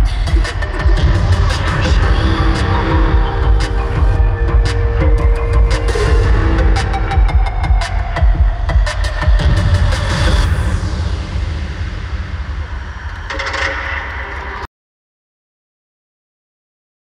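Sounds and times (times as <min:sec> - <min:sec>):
electronic dance music: 0:00.0 - 0:14.3.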